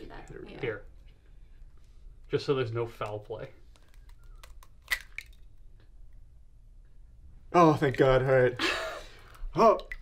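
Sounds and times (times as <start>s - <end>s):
faint soft handling sounds: 0.9s - 4.7s.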